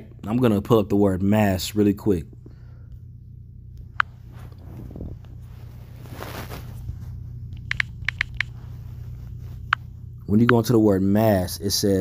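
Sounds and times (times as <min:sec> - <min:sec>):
steady low hum: 0:00.0 - 0:12.0
keyboard typing clicks: 0:07.6 - 0:08.5.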